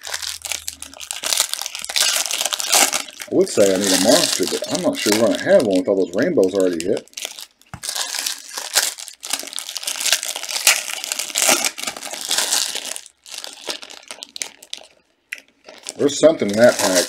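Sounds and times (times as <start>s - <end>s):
foil wrappers crinkling and tearing: 0.0s - 15.0s, 15.7s - 17.0s.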